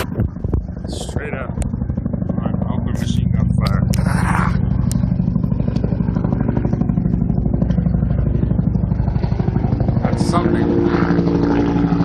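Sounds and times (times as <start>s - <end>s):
helicopter engine and rotor chop: 0.0s - 12.0s.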